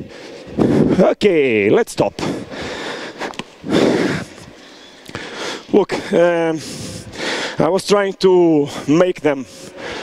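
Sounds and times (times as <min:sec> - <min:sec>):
person breathing: 0:00.0 - 0:01.0, 0:02.2 - 0:07.6, 0:08.7 - 0:10.0.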